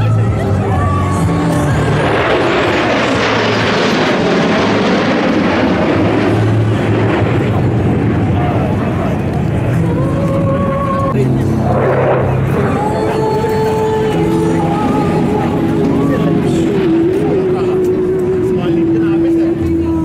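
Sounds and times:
jets passing overhead: 0.0 - 20.0.

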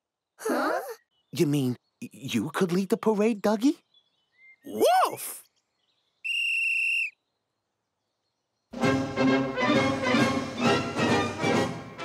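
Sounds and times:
high whistle blast: 6.2 - 7.2.

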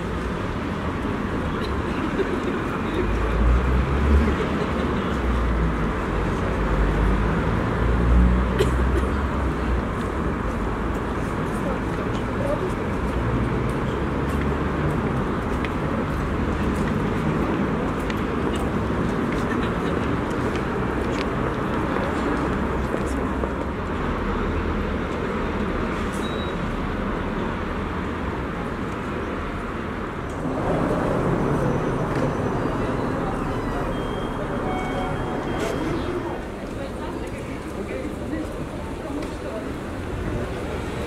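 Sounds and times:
indistinct voices of passersby: 0.0 - 41.0
road traffic: 0.0 - 41.0.

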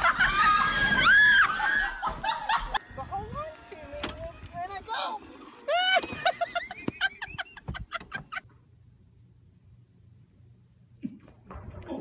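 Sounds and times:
person cackling laugh: 5.7 - 8.4.

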